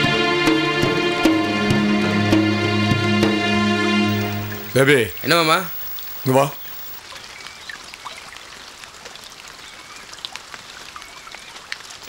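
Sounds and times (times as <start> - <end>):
faint high chirps: 4.1 - 7.0
small ticks: 4.1 - 7.0.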